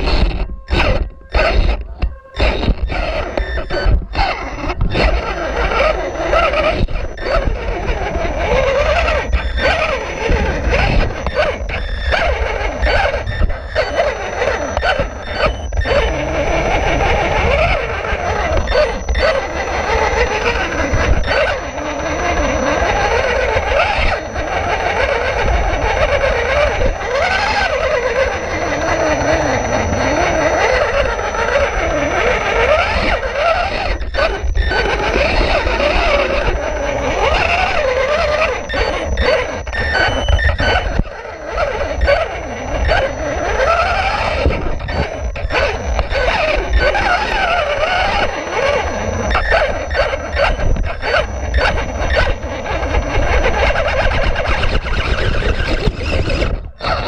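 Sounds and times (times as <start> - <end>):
electric motor whining: 0.0 - 57.0.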